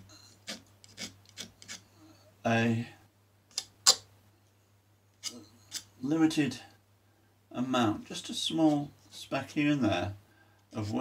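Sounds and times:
painting knife scraping and tapping: 0.0 - 1.9, 5.2 - 5.9.

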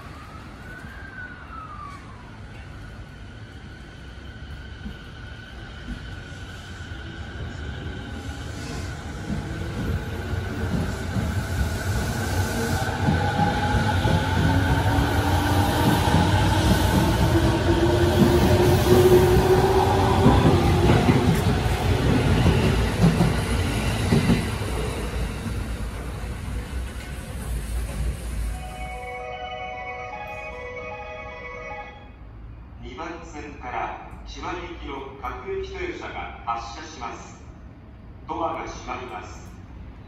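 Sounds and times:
train wheels rumbling on rails: 1.8 - 28.6.

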